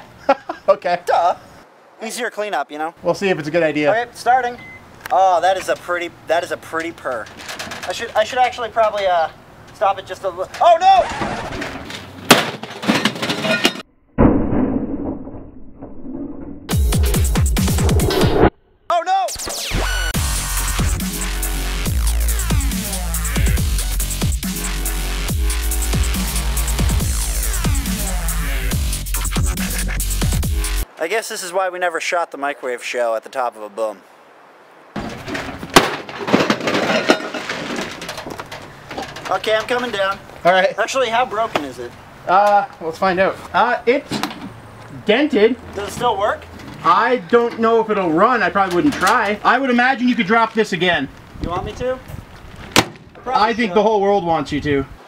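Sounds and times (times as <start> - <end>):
debris clattering: 7.0 - 8.6, 10.5 - 16.1, 35.0 - 40.3
glass breaking: 11.3 - 14.7, 35.0 - 38.4
sharp crack: 35.0 - 36.8, 52.7 - 53.2.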